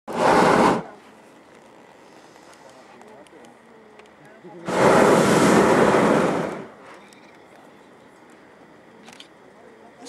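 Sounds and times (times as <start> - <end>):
propane burner firing: 0.1 - 9.7.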